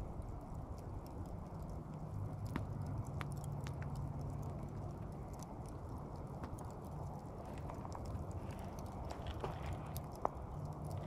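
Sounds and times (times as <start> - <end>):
embers crackling: 0.0 - 11.0
low steady rumble: 0.0 - 11.0.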